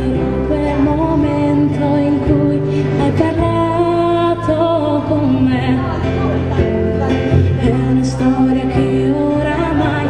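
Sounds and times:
bass guitar: 0.0s - 10.0s
strummed acoustic guitars: 0.0s - 10.0s
woman singing: 0.0s - 10.0s.

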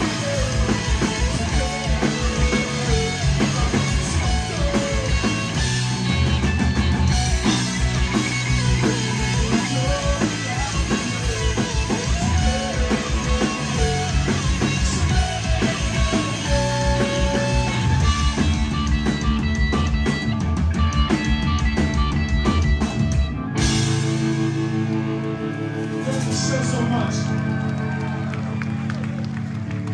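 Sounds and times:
drum kit: 0.0s - 27.5s
bass guitar: 0.0s - 29.9s
electric guitars: 0.0s - 29.9s.

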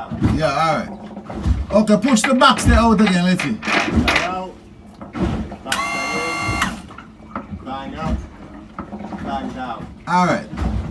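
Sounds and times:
hydraulic pump whining: 5.6s - 7.0s.

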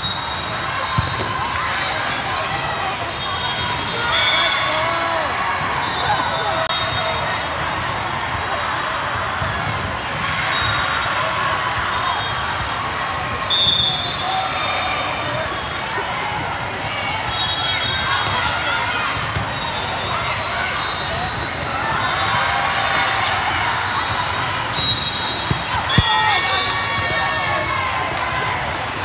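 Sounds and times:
sneakers squeaking on court: 23.1s - 27.0s.

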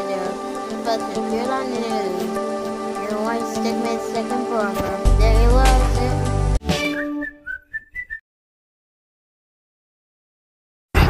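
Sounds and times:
person whistling a tune: 6.8s - 8.2s.

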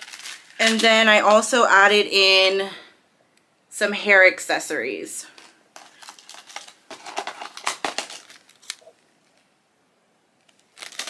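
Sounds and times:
plastic crinkling: 0.0s - 1.2s, 5.3s - 9.5s, 10.4s - 11.0s.

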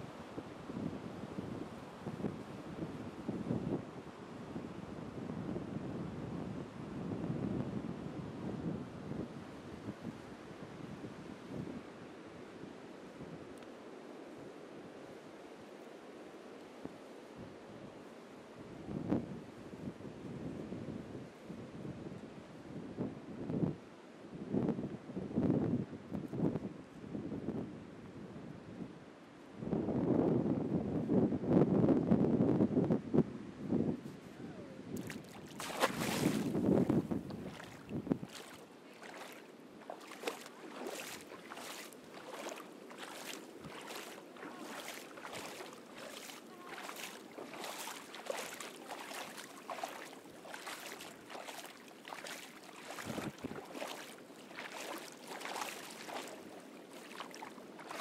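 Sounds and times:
wind buffeting microphone: 29.7s - 58.0s
feet wading through shallow water: 35.0s - 58.0s
surf: 35.0s - 58.0s.

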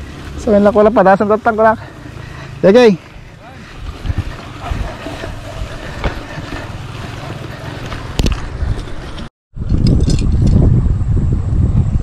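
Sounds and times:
bicycle knocking and rattling: 0.0s - 10.7s
wind rumbling on microphone: 3.6s - 12.0s.

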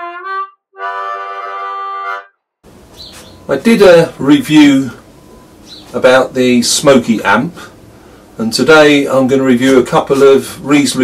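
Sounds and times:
harmonica holding a chord: 0.0s - 2.4s.

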